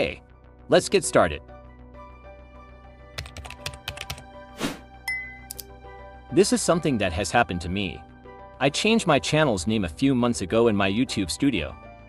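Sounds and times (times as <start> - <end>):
soft background music: 0.0 - 12.0
computer keyboard typing: 3.2 - 4.3.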